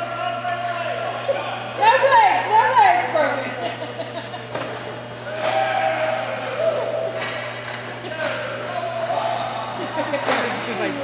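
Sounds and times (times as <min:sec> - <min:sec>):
distant echoing voices: 0:00.0 - 0:11.0
steady low hum: 0:00.0 - 0:11.0.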